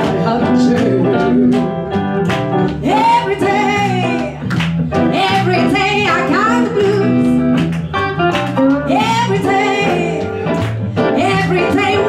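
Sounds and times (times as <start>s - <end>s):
woman singing: 0.0s - 1.7s, 2.8s - 4.4s, 5.0s - 7.4s, 8.8s - 12.0s
electric guitar: 0.0s - 12.0s.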